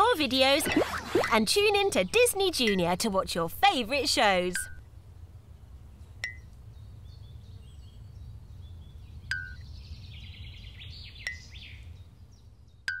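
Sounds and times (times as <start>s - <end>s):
birds chirping: 0.0s - 4.8s, 5.5s - 12.9s.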